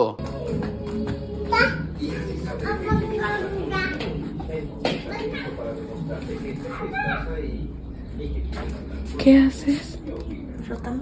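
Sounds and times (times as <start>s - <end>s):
young children calling and chattering: 1.0s - 10.1s.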